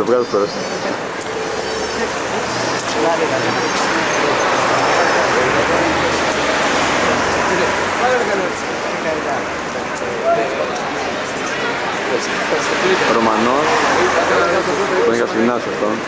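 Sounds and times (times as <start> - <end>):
babble of overlapping voices: 0.0 - 16.0.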